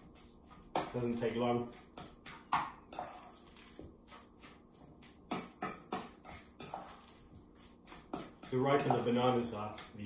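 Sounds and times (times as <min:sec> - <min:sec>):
fork mashing bananas: 0:00.0 - 0:10.0.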